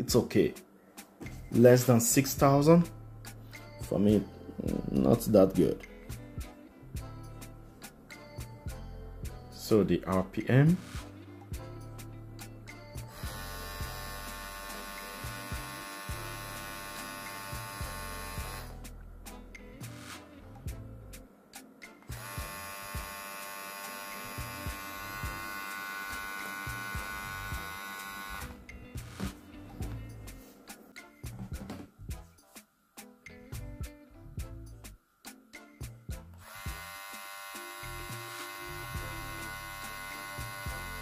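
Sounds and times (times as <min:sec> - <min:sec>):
hair trimmer buzzing: 0:13.0 - 0:18.8, 0:22.1 - 0:29.3, 0:36.4 - 0:41.0.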